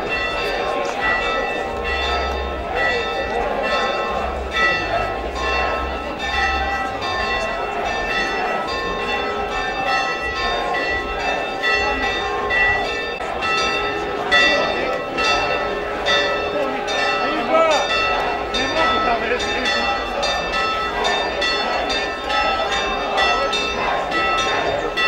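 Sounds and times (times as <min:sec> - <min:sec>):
church bells ringing: 0:00.0 - 0:25.0
voices of a large crowd: 0:00.0 - 0:25.0.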